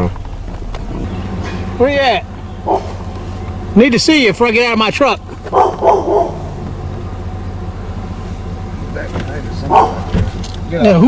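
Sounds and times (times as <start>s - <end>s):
truck engine humming: 0.0s - 11.0s
large dog barking: 2.6s - 3.0s, 5.5s - 6.6s, 9.6s - 10.1s.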